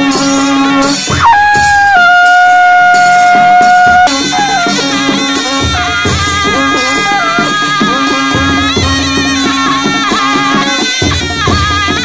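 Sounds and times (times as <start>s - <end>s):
drum and cymbal strokes: 0.0s - 12.0s
wind instrument melody: 0.0s - 12.0s.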